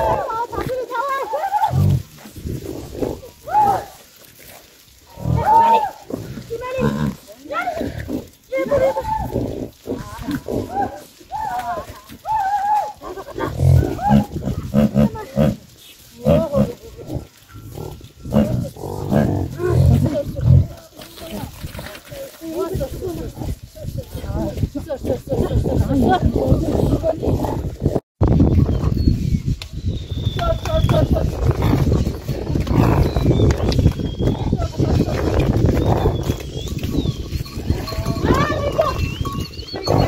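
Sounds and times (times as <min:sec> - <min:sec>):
people calling to animals: 0:00.0 - 0:04.2, 0:05.0 - 0:28.0, 0:30.3 - 0:40.0
yaks grunting: 0:05.1 - 0:08.4, 0:13.3 - 0:15.6, 0:16.2 - 0:20.8, 0:32.6 - 0:33.2.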